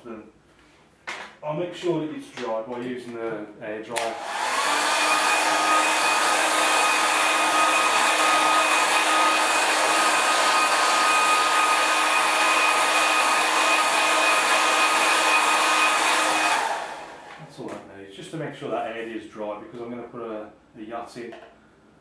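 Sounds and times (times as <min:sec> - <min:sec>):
hair dryer blowing: 0:04.0 - 0:17.6.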